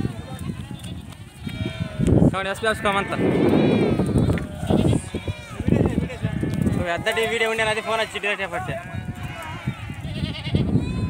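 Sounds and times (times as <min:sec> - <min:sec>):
goats bleating: 0:00.4 - 0:11.0.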